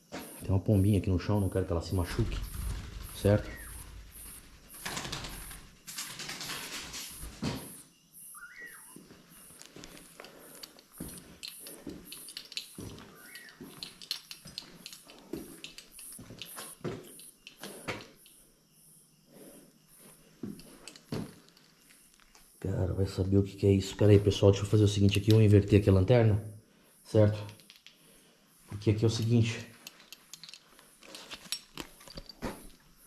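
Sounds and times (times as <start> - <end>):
footsteps: 2.0 - 7.8, 8.9 - 18.2, 20.0 - 22.4, 28.7 - 32.9.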